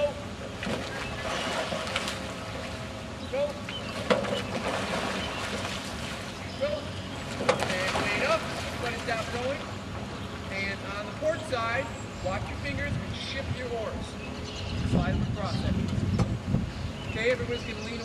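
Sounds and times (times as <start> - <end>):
oars knocking in oarlocks: 3.9 - 5.9, 7.3 - 8.1
wind on microphone: 12.2 - 17.8.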